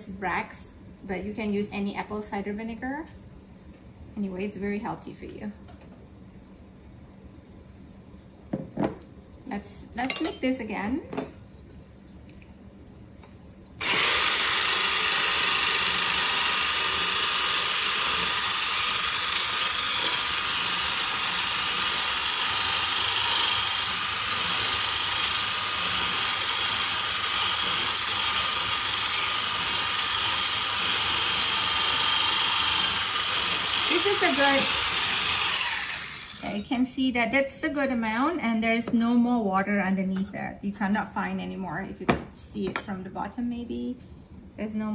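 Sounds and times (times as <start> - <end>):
electric hand mixer whisking: 13.8 - 36.7.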